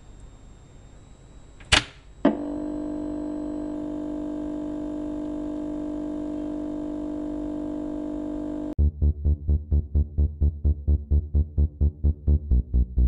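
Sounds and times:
electronic drone of held tones: 2.3s - 8.8s.

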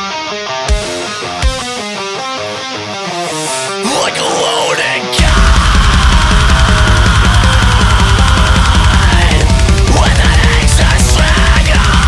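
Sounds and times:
electric guitar rapid notes: 0.0s - 12.0s.

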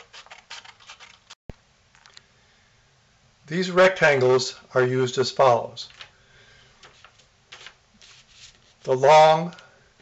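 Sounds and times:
cardstock rustling on table: 0.0s - 1.4s, 6.8s - 9.6s.

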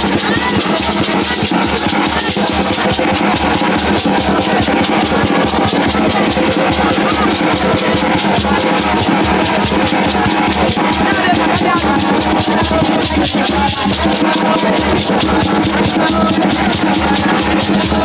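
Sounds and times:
gourd rattles shaken: 0.0s - 18.0s
hand drum beating: 0.0s - 18.0s
hand-clapping: 0.0s - 18.0s.

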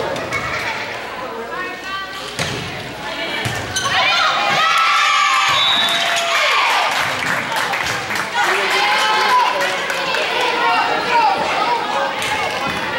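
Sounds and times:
high-pitched shouting and cheering: 3.9s - 7.0s.

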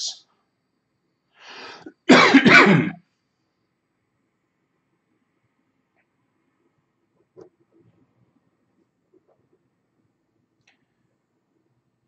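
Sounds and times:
man clearing his throat: 2.0s - 3.0s.

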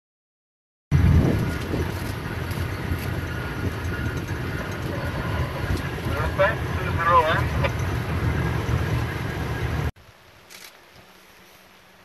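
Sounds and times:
vehicle engine and tyre rumble: 0.9s - 12.0s.

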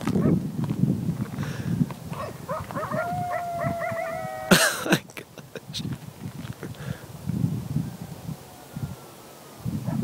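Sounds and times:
coyotes howling and yipping: 2.1s - 4.5s, 7.8s - 10.0s.

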